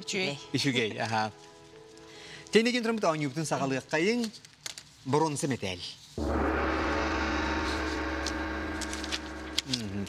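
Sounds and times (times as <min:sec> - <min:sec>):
gong ringing: 0:06.2 - 0:09.9.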